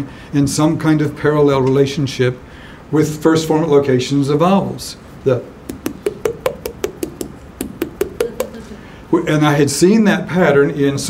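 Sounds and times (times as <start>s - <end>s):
fingers tapping neck hollow taps: 5.7s - 8.7s.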